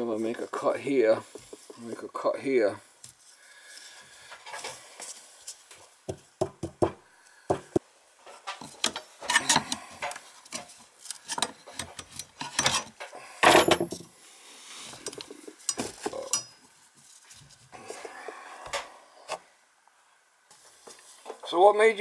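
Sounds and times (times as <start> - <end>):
metallic clicks and scraping: 8.3 - 13.1.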